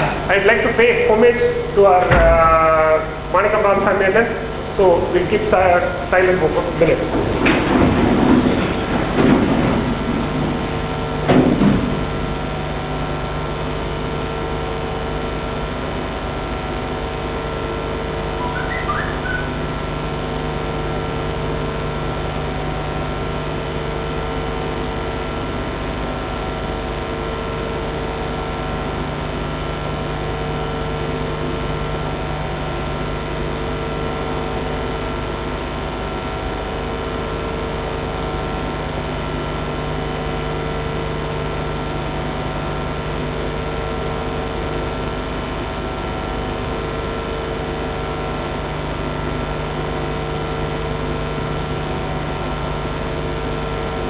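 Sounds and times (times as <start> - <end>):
air conditioning hum: 0.0 - 13.4
faint chirp: 18.4 - 19.9.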